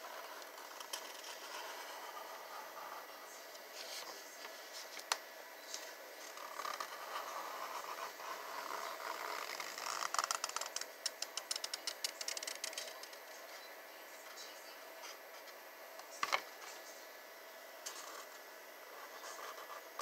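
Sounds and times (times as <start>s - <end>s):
marker scratching on cardboard: 0.1s - 4.9s, 18.9s - 20.0s.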